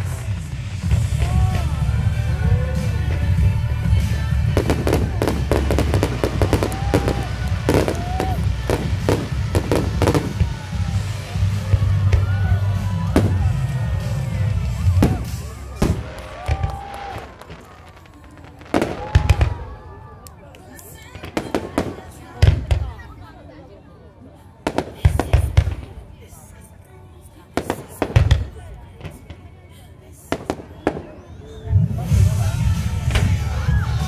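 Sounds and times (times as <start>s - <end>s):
firework booms: 4.4s - 11.0s, 13.1s - 19.8s.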